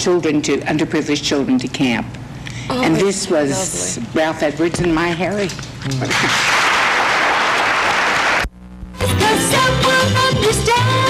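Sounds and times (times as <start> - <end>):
audience applauding: 6.0 - 8.5.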